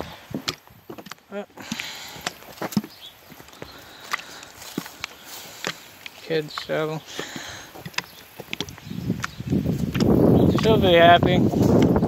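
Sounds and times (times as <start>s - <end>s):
footsteps on grass and gravel: 0.0s - 12.0s.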